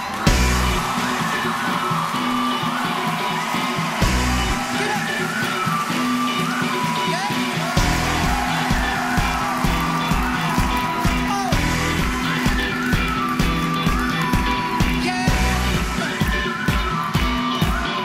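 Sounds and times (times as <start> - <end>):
heavy bass-drum beat: 0.0 - 2.4, 3.8 - 5.5, 7.0 - 18.0
audience whooping: 0.0 - 18.0
live pop-rock band: 0.0 - 18.0.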